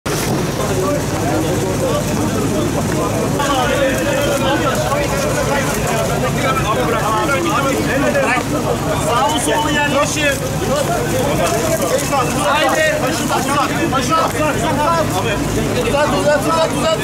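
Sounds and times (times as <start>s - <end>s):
people talking and calling out: 0.0s - 17.0s
steady low rumble: 0.1s - 17.0s.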